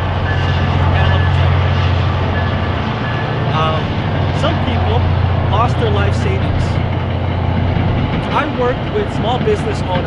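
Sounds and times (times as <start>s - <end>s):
train passing rumble: 0.0s - 10.0s.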